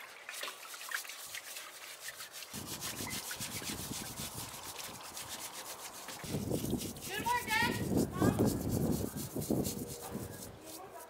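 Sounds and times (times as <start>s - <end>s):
hands scrubbing in pan of water: 0.0s - 11.0s.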